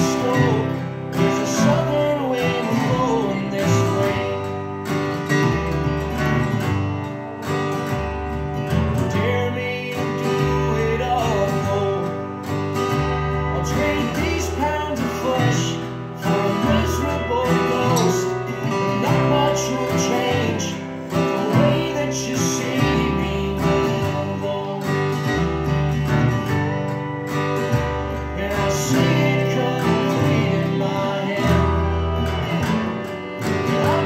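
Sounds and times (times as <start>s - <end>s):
acoustic guitar strummed chords: 0.0s - 34.0s
guitar melody line: 0.0s - 34.0s.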